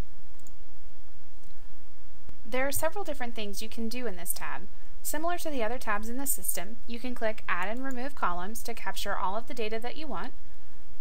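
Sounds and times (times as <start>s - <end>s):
steady low hum: 0.0s - 11.0s
computer mouse clicks: 0.4s - 0.6s, 7.6s - 8.1s.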